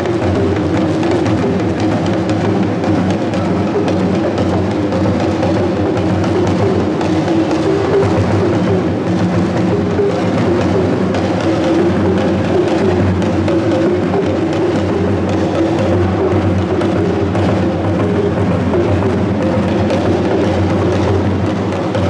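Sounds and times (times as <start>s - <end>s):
talking drums beaten with sticks: 0.0s - 22.0s.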